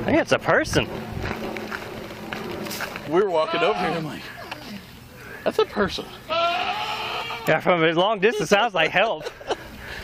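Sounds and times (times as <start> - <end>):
footsteps through tall grass: 0.7 - 4.3.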